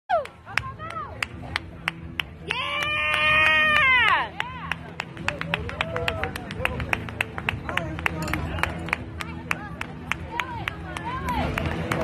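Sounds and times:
rhythmic clapping: 0.1s - 12.0s.

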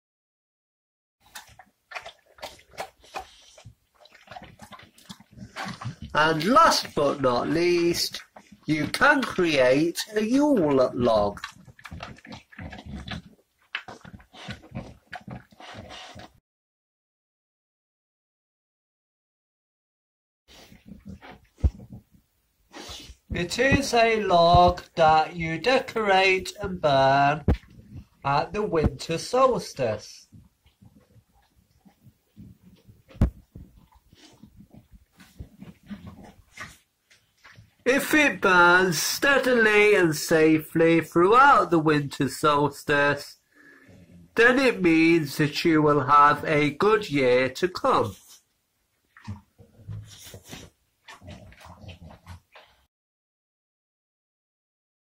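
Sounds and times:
dog sniffing and snuffling: 1.3s - 7.0s, 11.4s - 16.4s, 20.5s - 25.3s, 27.4s - 29.0s, 30.2s - 37.9s, 48.1s - 48.5s, 49.2s - 52.9s.

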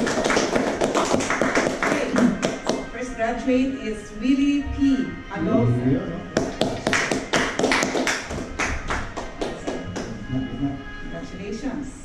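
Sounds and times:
group hand clapping: 0.0s - 2.9s, 6.4s - 10.4s
quiet background music: 0.0s - 12.0s.

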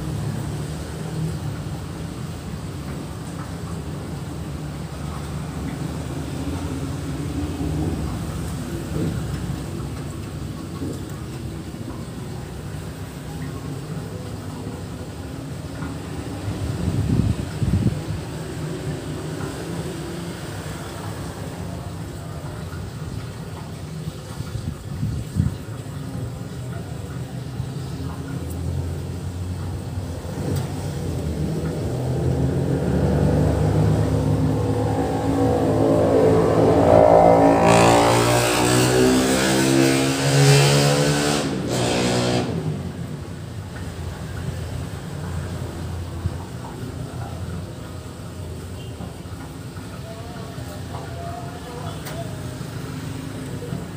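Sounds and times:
vehicle engine passing by: 27.0s - 49.4s.

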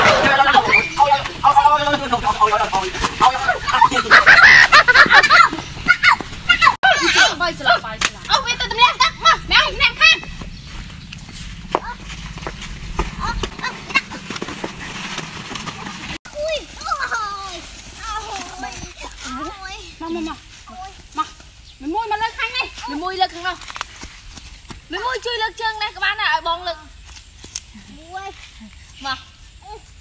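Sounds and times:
people crying and yelping: 3.1s - 10.3s
scuffing on dirt road: 8.8s - 29.6s.

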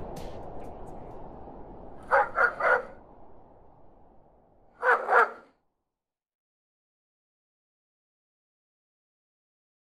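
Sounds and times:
dog barking: 2.1s - 3.0s, 4.8s - 5.5s.

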